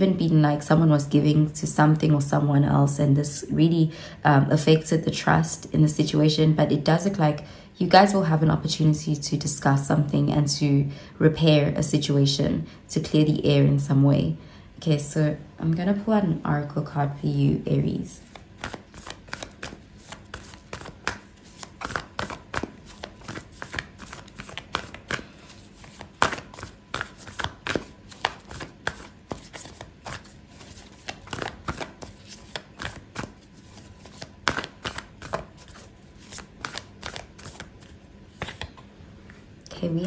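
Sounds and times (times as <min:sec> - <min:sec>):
cards being shuffled: 0:18.2 - 0:38.9.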